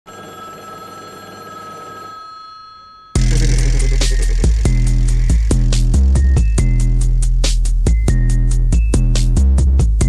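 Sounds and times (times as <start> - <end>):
telephone ringing tone: 0.1 - 5.7
electronic beat with heavy bass: 3.2 - 7.7.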